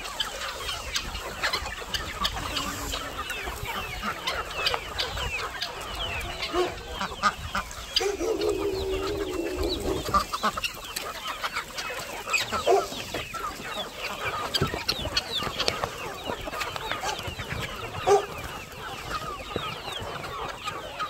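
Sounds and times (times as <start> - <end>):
chickens clucking: 0.0 - 21.0
long held chicken call: 6.4 - 10.7.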